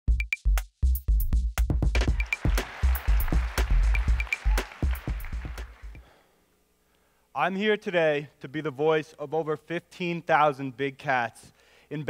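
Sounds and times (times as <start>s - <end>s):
electronic music with fast beat: 0.1s - 6.0s.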